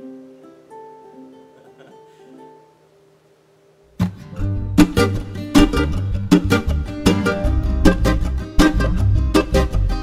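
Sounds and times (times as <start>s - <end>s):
ukulele notes plucked: 0.0s - 2.8s, 4.0s - 10.0s.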